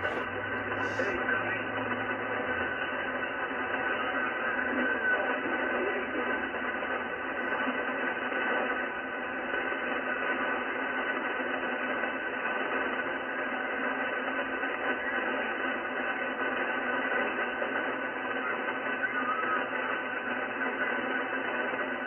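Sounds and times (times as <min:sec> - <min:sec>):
radio hiss: 0:00.0 - 0:22.0.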